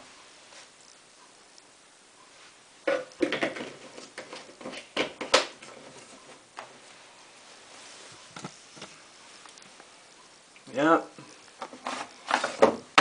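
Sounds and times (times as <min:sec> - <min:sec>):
plastic bottle and drawer knocks: 0:02.9 - 0:03.8, 0:12.6 - 0:13.0.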